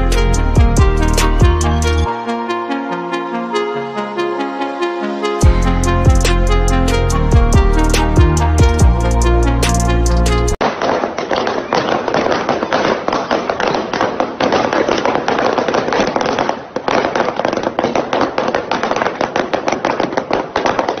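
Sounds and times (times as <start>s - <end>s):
balloons bursting under car tyres: 10.6s - 21.0s.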